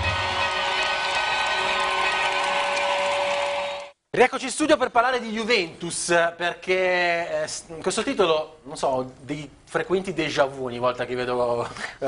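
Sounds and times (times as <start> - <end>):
stadium crowd cheering: 0.0 - 4.0.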